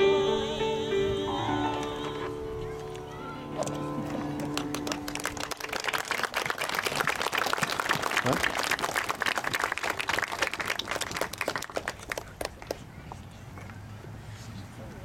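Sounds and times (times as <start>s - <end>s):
people applauding: 4.1s - 12.9s.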